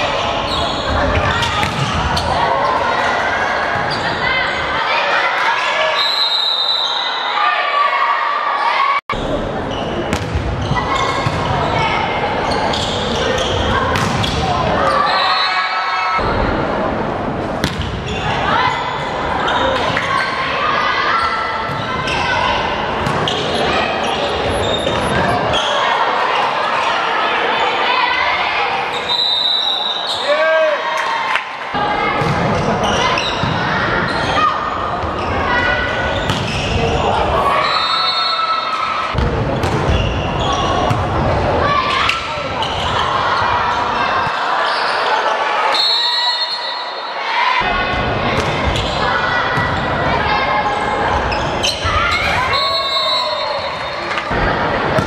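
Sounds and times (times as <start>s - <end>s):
people shouting and cheering: 0.0s - 9.7s, 10.7s - 17.0s, 18.1s - 55.0s.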